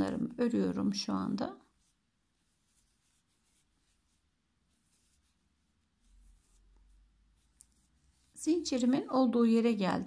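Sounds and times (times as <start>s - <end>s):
crochet hook rubbing yarn: 1.6s - 9.2s.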